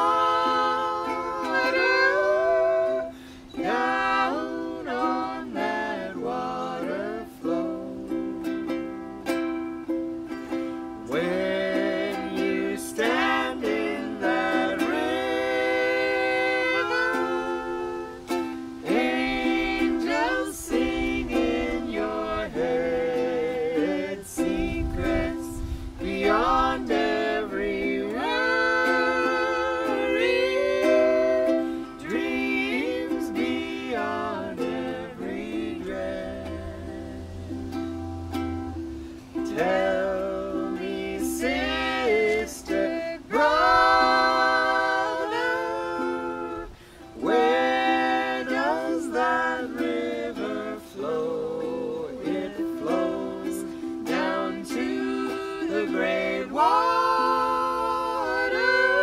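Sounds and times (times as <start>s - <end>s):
people singing together: 0.0s - 59.0s
ukulele: 0.0s - 59.0s.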